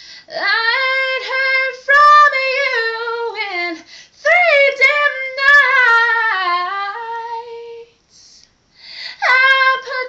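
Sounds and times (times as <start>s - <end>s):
woman singing a cappella: 0.0s - 10.0s.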